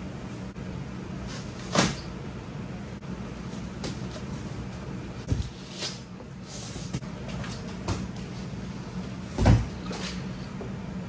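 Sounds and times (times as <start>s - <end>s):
steady low background hum: 0.0s - 11.0s.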